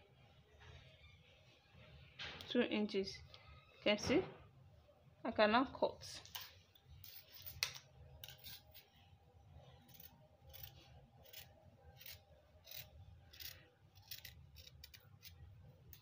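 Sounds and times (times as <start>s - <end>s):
scissors snipping fabric: 9.8s - 16.0s.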